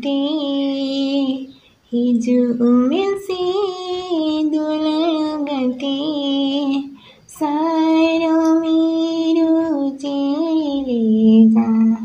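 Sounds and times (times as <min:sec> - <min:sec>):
man singing in high voice: 0:00.0 - 0:12.0.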